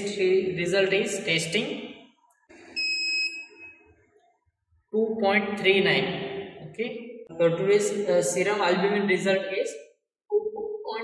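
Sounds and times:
high electronic beep: 2.6 - 3.9.

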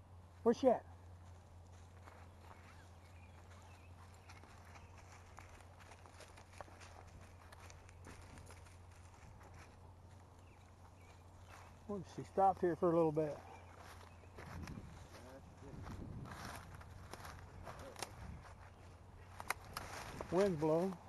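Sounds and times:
steady low hum: 0.0 - 21.0
footsteps rustling through brush: 0.2 - 21.0.

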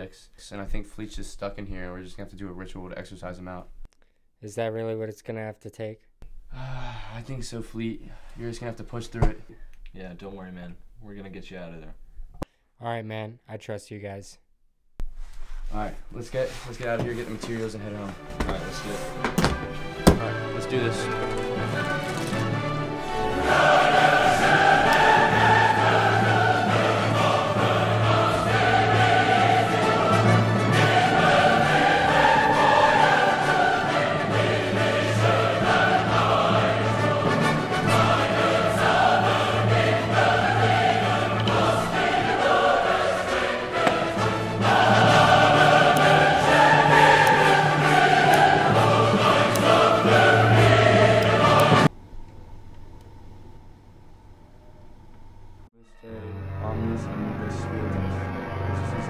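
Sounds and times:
choir singing: 17.5 - 51.9, 56.3 - 59.0.

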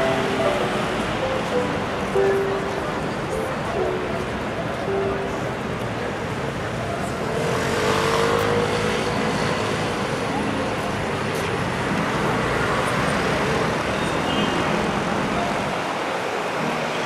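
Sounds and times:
vehicle engines running: 0.0 - 14.1
cars passing: 0.0 - 17.0.

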